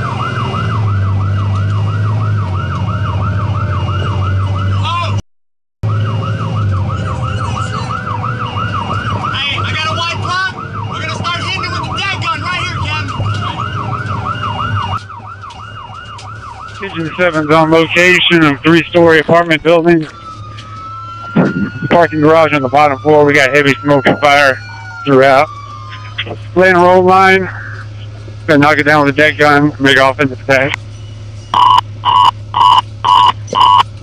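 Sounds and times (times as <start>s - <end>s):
fire engine siren yelping: 0.0s - 5.2s, 5.8s - 34.0s
truck engine drone: 0.0s - 5.2s, 5.8s - 34.0s.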